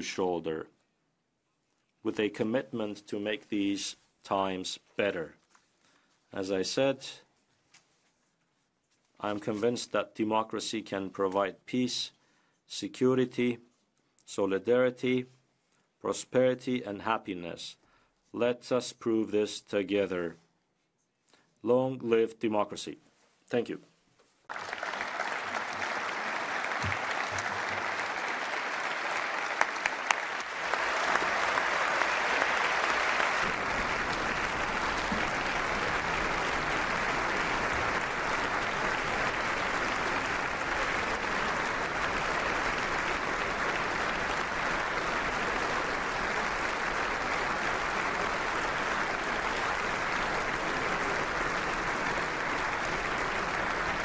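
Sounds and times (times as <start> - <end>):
large audience applauding: 24.5 - 54.0.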